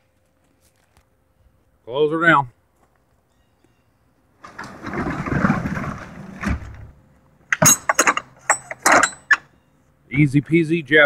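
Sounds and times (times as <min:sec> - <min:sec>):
roll-up door rattling down: 0:04.4 - 0:06.9, 0:07.5 - 0:09.4
metal latch clanks: 0:07.5 - 0:09.5.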